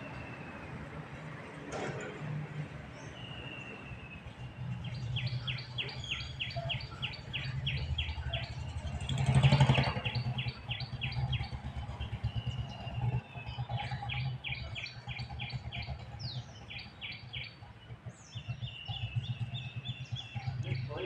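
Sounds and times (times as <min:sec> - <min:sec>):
birds chirping: 0:01.9 - 0:21.0
down-slurred bird calls: 0:04.8 - 0:08.6, 0:18.3 - 0:21.0.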